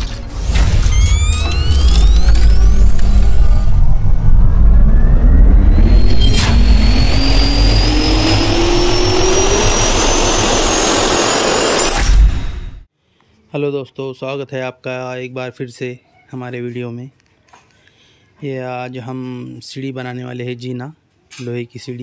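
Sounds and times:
jet turbine spooling up: 0:00.0 - 0:12.9
sharp hit: 0:00.0 - 0:12.9.

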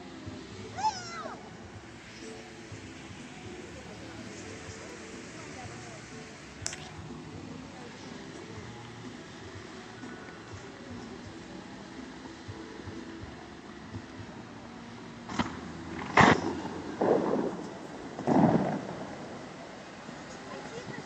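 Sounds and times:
rushing bursts of water: 0:00.0 - 0:21.0
steady low background noise: 0:00.0 - 0:21.0
sharp crack: 0:15.3 - 0:19.2.

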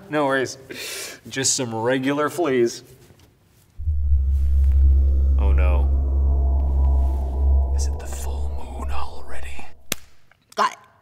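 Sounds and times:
low drone: 0:03.8 - 0:10.3.

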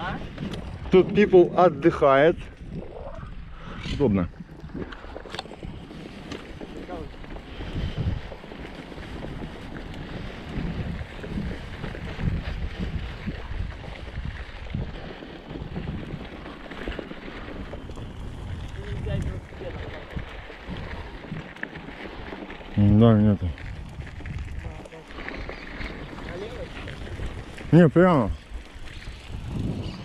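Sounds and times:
bike rolling on dirt trail: 0:00.0 - 0:30.0
wind buffeting microphone: 0:00.0 - 0:30.0.

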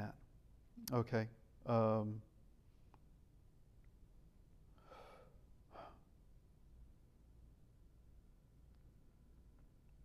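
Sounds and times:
man breathing faintly: 0:04.7 - 0:06.3.

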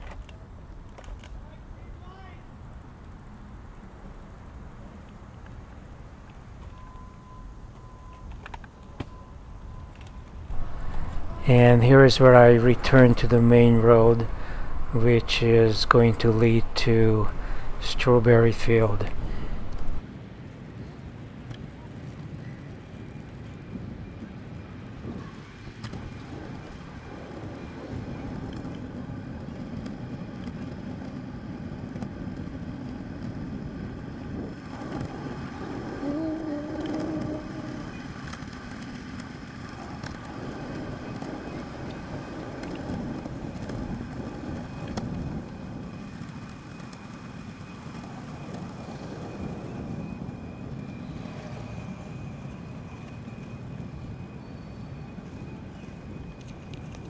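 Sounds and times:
kick scooter rolling on asphalt: 0:00.0 - 0:57.0.

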